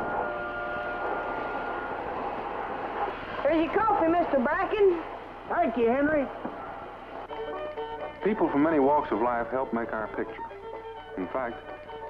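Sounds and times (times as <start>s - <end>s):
steady rushing noise: 0.0s - 7.4s.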